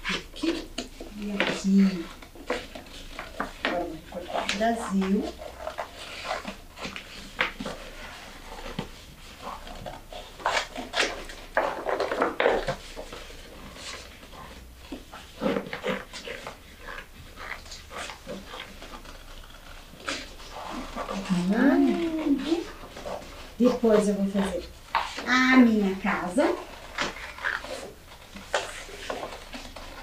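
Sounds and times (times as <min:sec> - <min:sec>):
paper rustling and crackling: 0:00.0 - 0:30.0
scissors cutting paper: 0:00.0 - 0:30.0.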